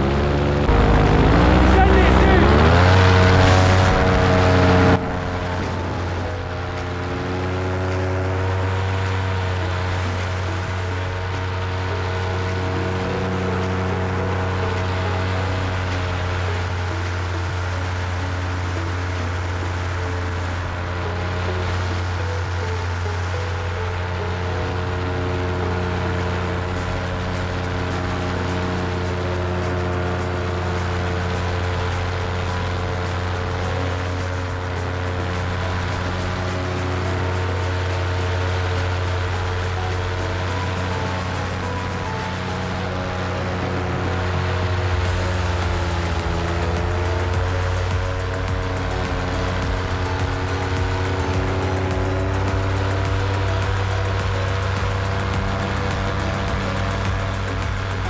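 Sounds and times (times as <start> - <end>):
paramotor engine droning: 0.0 - 58.0.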